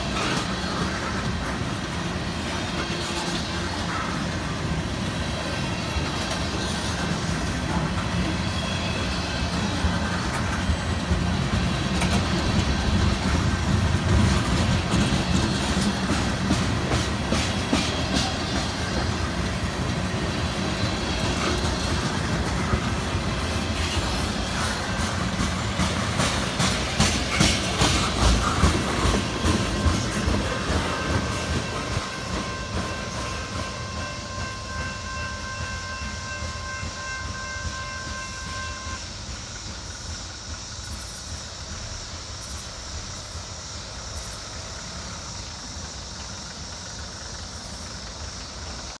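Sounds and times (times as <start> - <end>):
train wheels clicking over rails: 0.0 - 49.0.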